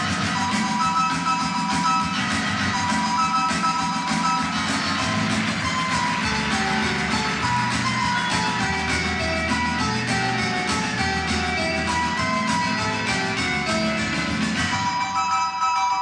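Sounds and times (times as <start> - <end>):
instrumental music: 0.0 - 16.0
deep bass part: 1.6 - 14.9.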